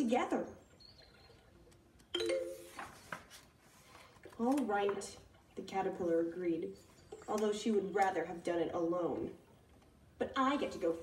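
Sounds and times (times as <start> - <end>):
book page turning: 2.5 - 5.3.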